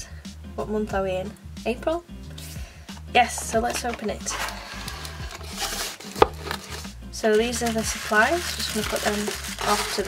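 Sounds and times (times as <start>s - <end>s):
cardboard rubbing and scraping: 3.5s - 10.0s.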